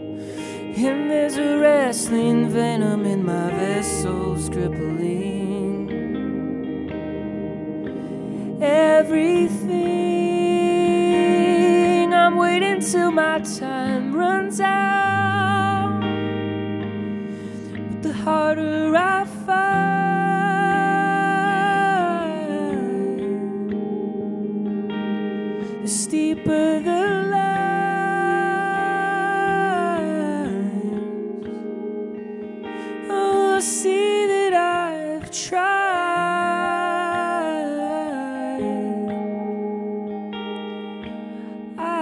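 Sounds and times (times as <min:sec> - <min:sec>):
slow folk guitar and electric piano: 0:00.0 - 0:42.0
wordless sung melody: 0:00.0 - 0:42.0.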